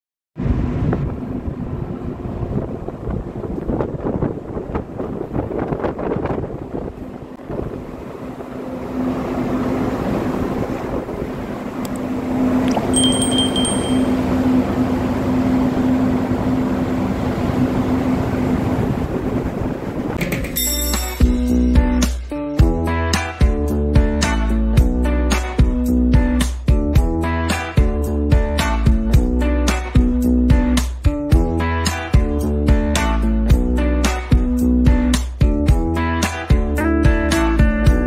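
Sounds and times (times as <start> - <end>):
wind buffeting microphone: 0.4 - 8.6, 9.9 - 11.8, 17.4 - 20.2
low machinery hum: 0.4 - 20.2
high electronic beep: 12.9 - 14.2.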